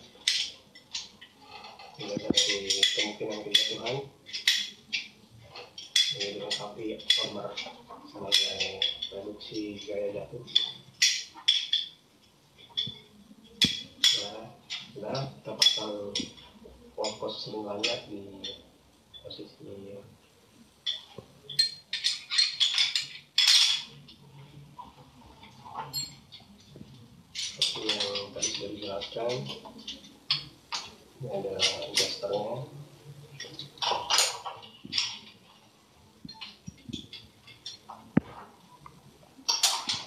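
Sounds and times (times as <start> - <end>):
metal carabiners clinking: 0.0 - 12.0, 12.6 - 19.4, 20.8 - 35.6, 36.2 - 40.0.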